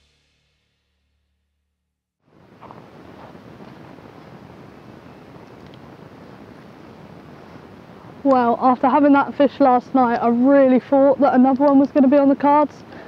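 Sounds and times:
wind on microphone: 2.4s - 13.0s.

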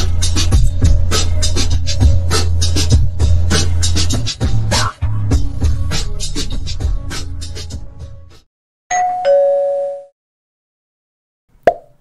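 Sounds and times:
two-note doorbell chime: 8.9s - 10.1s.

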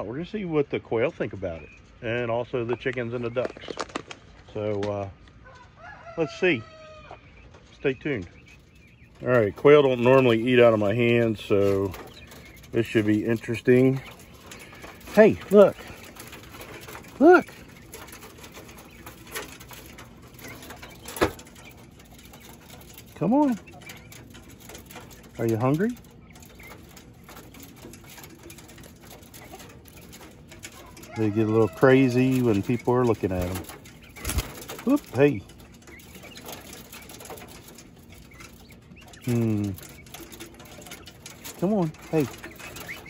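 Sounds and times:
quail fluttering on wire mesh: 3.3s - 43.0s.

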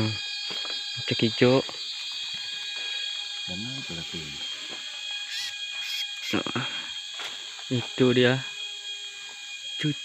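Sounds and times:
insects buzzing: 0.0s - 10.0s.

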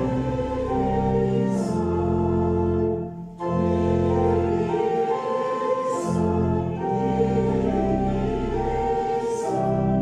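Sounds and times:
church organ chords: 0.0s - 10.0s
congregation singing: 0.0s - 10.0s.

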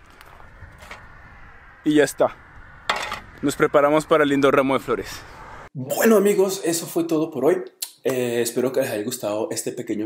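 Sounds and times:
man's voice: 5.8s - 10.0s.

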